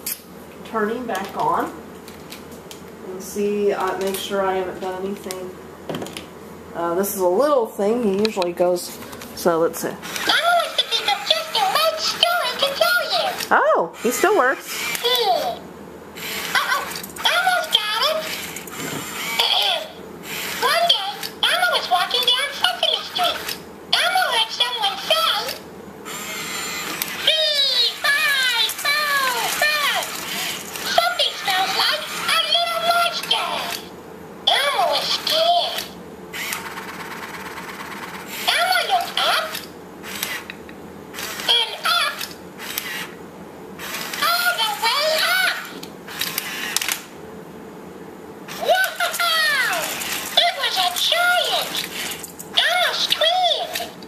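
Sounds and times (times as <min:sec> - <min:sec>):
toy motors whirring: 0:10.0 - 0:15.6, 0:16.2 - 0:33.9, 0:34.5 - 0:43.2, 0:43.8 - 0:47.1, 0:48.5 - 0:54.0
toy robot talking in high voice: 0:10.0 - 0:15.6, 0:16.2 - 0:33.9, 0:34.5 - 0:40.5, 0:41.2 - 0:43.1, 0:43.8 - 0:45.8, 0:48.5 - 0:54.0.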